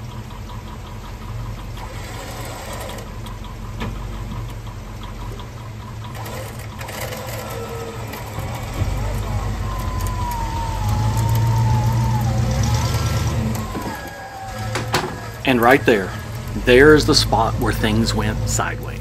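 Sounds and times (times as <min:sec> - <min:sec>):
off-road vehicle engine idling: 0:00.0 - 0:19.0.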